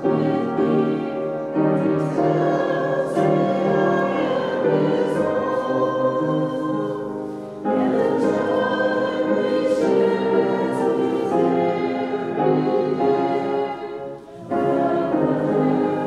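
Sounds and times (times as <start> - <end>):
congregation singing a hymn: 0.0 - 16.0.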